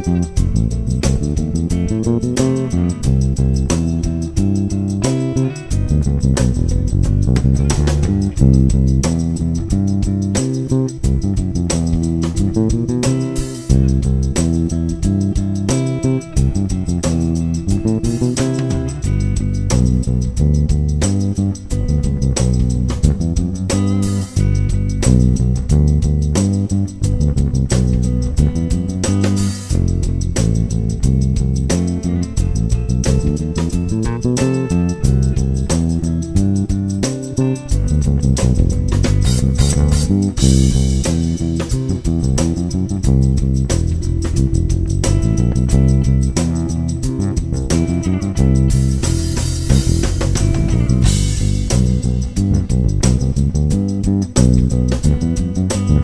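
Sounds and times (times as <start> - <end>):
drums keeping time: 0.0 - 56.0
electric bass guitar: 0.0 - 56.0.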